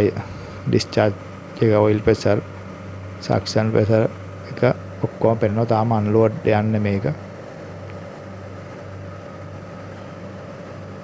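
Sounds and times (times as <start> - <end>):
chiller plant low hum: 0.0 - 11.0.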